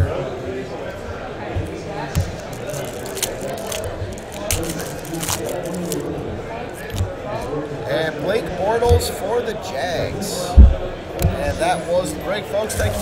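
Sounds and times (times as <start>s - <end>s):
murmur of voices: 0.0s - 13.0s
foil wrappers crinkling: 2.2s - 7.0s.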